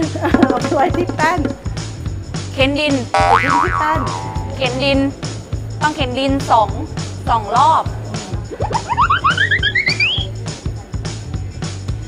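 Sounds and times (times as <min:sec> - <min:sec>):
background music with steady beat: 0:00.0 - 0:12.0
rising run of short notes: 0:08.5 - 0:10.3.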